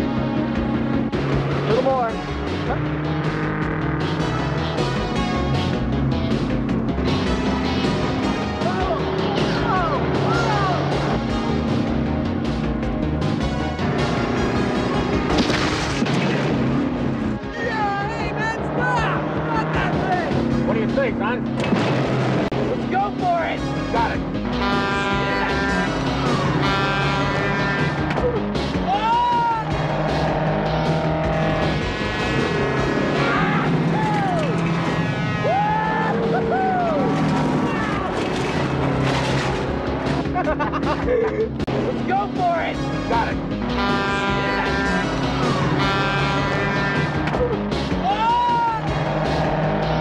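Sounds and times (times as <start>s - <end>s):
diesel truck engine running: 0.0s - 48.1s.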